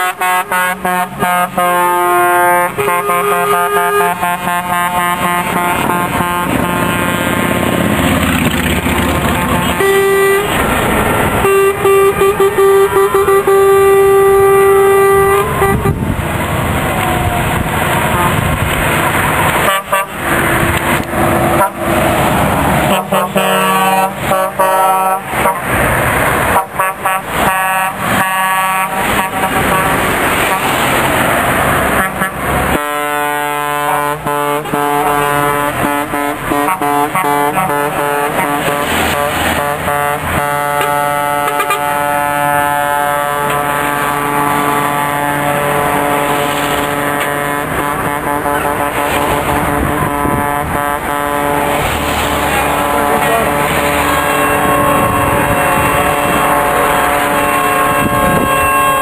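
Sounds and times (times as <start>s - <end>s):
lorry air horns blasting: 0.0s - 25.8s, 26.4s - 59.0s
diesel engines: 0.0s - 59.0s.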